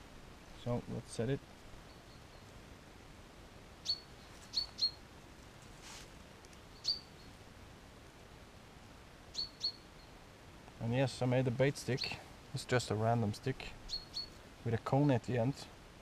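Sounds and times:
small bird chirping: 0:01.8 - 0:02.6, 0:03.8 - 0:05.0, 0:06.5 - 0:07.4, 0:09.3 - 0:10.2, 0:13.8 - 0:14.4.

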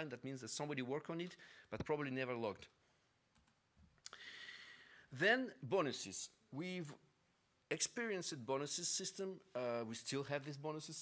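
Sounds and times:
soft hiss: 0:00.0 - 0:11.0.

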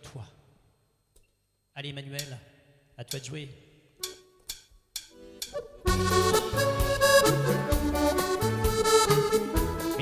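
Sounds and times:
button accordion playing a tune: 0:05.6 - 0:10.0.

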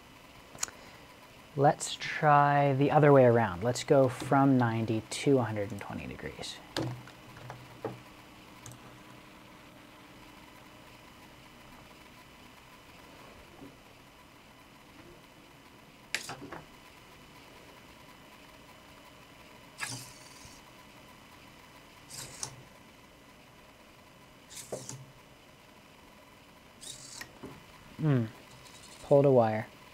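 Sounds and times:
faint steady hum: 0:00.0 - 0:29.9
servo motors clattering: 0:19.8 - 0:20.6, 0:22.0 - 0:22.6, 0:24.5 - 0:25.1, 0:26.8 - 0:27.6, 0:28.4 - 0:29.1.

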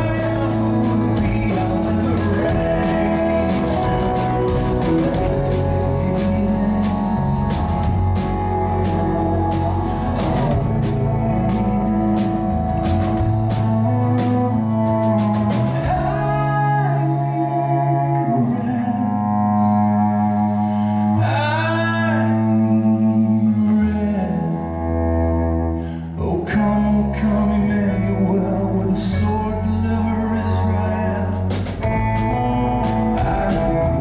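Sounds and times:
man singing: 0:00.0 - 0:25.0, 0:26.0 - 0:34.0
cello: 0:00.0 - 0:26.1
acoustic guitar: 0:00.0 - 0:34.0
drums: 0:00.0 - 0:34.0
electric guitar: 0:00.0 - 0:34.0.

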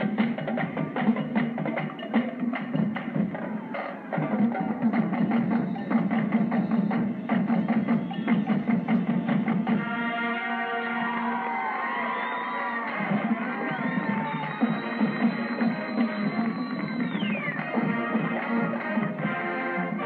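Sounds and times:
snare and tenor drums: 0:00.0 - 0:10.5, 0:12.9 - 0:20.0.

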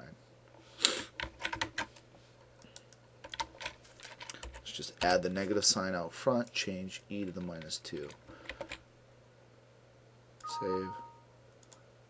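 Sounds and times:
computer keyboard keystrokes: 0:01.2 - 0:01.9, 0:02.6 - 0:05.2, 0:07.3 - 0:08.8, 0:11.6 - 0:11.8.

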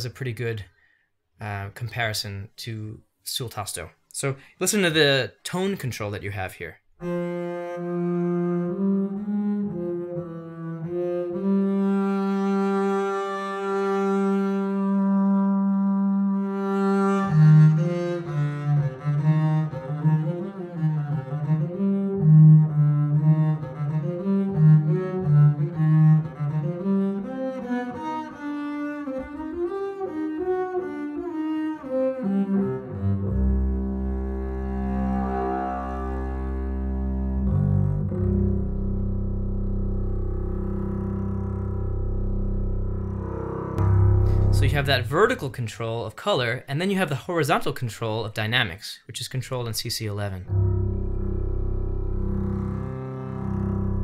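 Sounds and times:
bowed double bass: 0:07.0 - 0:45.5, 0:50.5 - 0:54.0.

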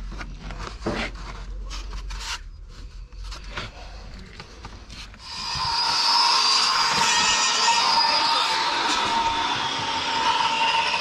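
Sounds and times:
loud mechanical whine: 0:05.2 - 0:11.0.

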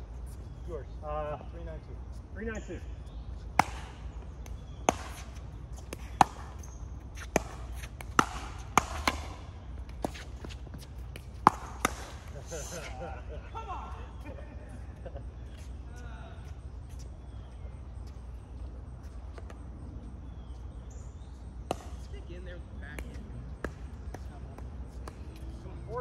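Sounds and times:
paddles hitting plastic ball: 0:03.6 - 0:12.4.

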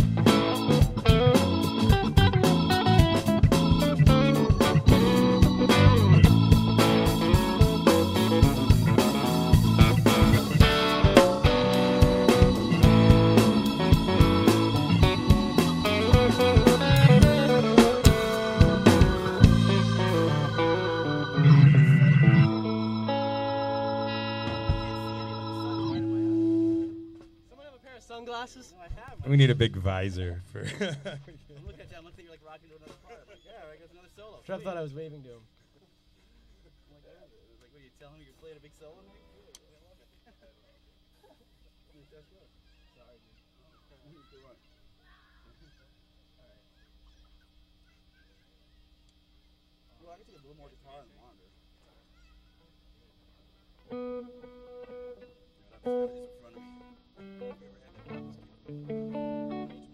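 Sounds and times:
drums: 0:00.0 - 0:23.0, 0:24.3 - 0:27.4
bass guitar: 0:00.0 - 0:27.4
electric guitar: 0:00.0 - 0:27.5, 0:53.8 - 0:59.9
organ: 0:00.0 - 0:27.6, 0:53.6 - 0:59.9
held chord ringing: 0:00.2 - 0:27.5.

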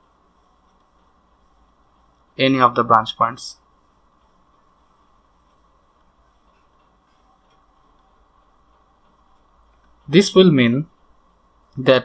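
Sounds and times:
faint room hum: 0:00.0 - 0:12.0
stylus ticking on a tablet: 0:03.8 - 0:10.3.

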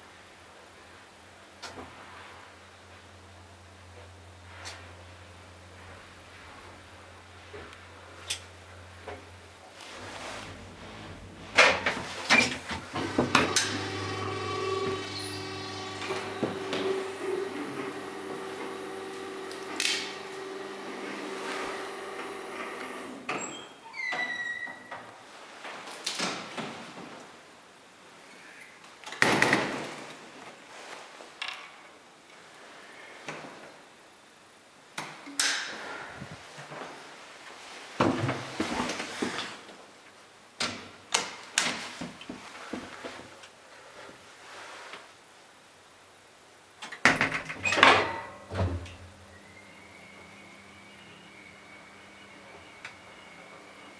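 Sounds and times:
hydraulic lift humming: 0:10.0 - 0:23.3.

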